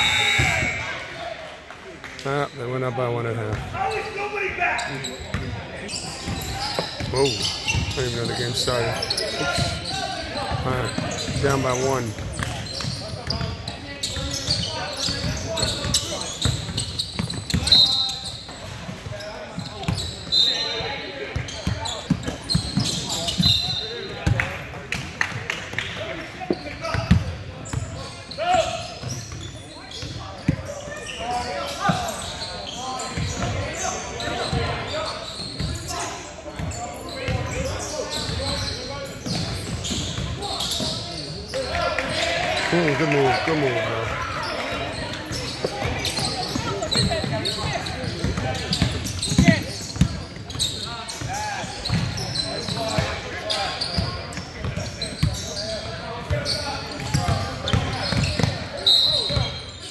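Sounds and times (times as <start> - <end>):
sneaker squeaks: 3.5 - 24.5, 26.4 - 59.9.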